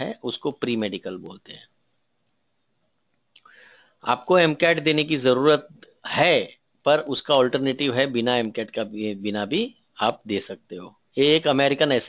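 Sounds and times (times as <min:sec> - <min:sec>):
man speaking: 0:00.0 - 0:01.6, 0:04.0 - 0:12.0
faint short breath: 0:03.4 - 0:04.0.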